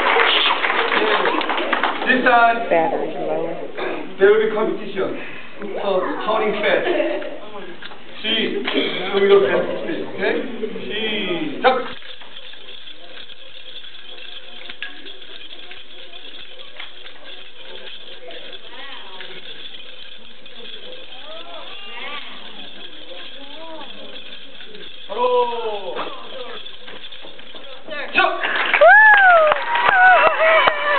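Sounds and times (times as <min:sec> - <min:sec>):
hall background noise: 0:00.0 - 0:30.9
faint voices: 0:08.8 - 0:28.3.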